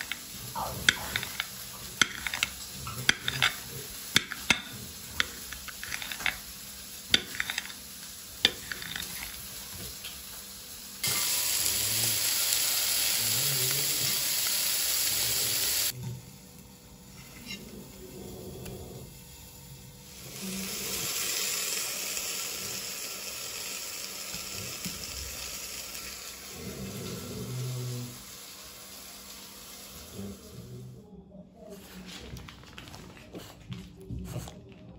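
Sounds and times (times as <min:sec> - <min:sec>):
food sizzling in frying pan: 0:00.0 - 0:16.0, 0:20.0 - 0:30.4.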